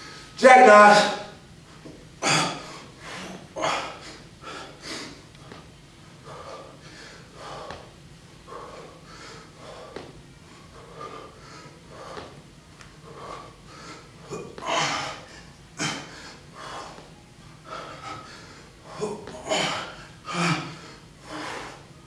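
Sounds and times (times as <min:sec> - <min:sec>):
man breathing hard: 0:02.2 - 0:22.0.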